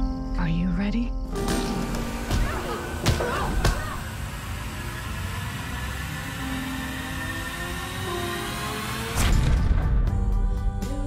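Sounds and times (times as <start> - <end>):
steady low drone: 2.0 - 11.0
rising tone: 2.1 - 9.5.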